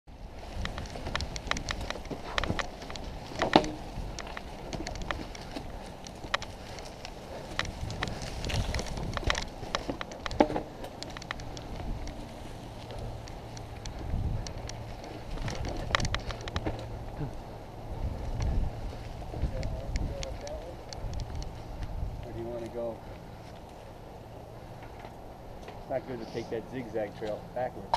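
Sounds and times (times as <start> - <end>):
wind rumbling on microphone: 0.1 - 25.6
bike rattling and clicking: 0.1 - 27.9
bike tyres rolling through leaves: 0.1 - 27.9.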